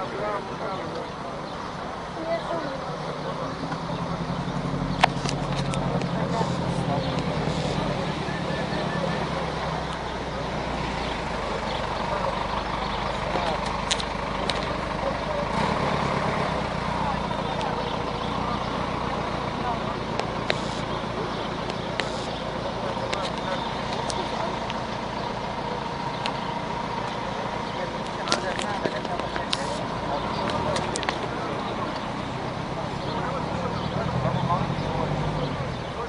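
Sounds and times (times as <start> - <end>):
people talking over one another: 0.0 - 36.0
street and traffic noise: 0.0 - 36.0.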